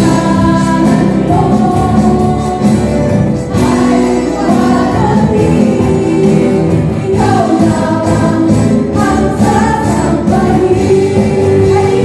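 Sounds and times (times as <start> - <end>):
acoustic guitar: 0.0 - 12.0
bass guitar: 0.0 - 12.0
drums: 0.0 - 12.0
keyboard: 0.0 - 12.0
women singing together: 0.0 - 12.0.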